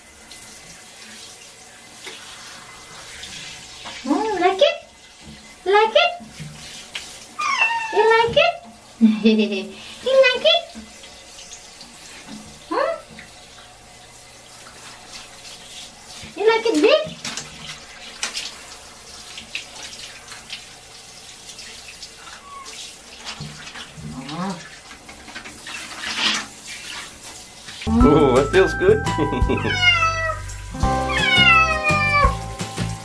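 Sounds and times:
shower water spraying: 0.0s - 33.0s
cat meowing: 7.4s - 8.1s, 29.5s - 32.4s.

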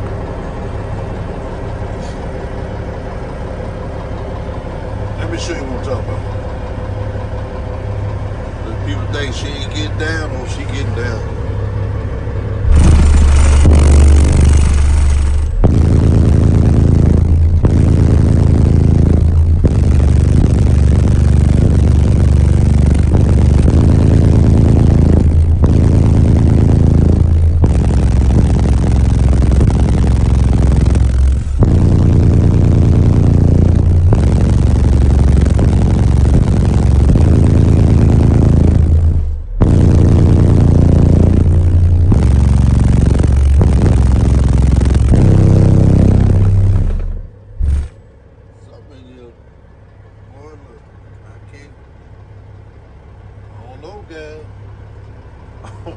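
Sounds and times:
diesel truck engine revving: 0.0s - 55.9s.

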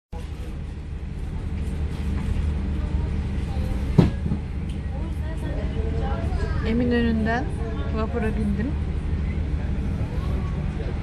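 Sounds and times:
ferry engine low rumble: 0.1s - 11.0s
sharp thump: 3.9s - 4.4s.

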